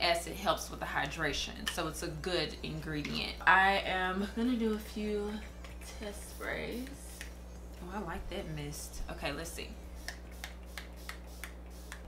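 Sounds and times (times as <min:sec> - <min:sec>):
spray bottle hissing: 0:10.0 - 0:12.0.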